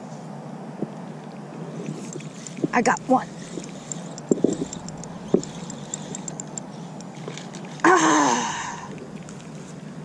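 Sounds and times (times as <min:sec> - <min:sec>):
faint quick ticking: 0:01.8 - 0:07.9
woman groaning: 0:07.8 - 0:08.8.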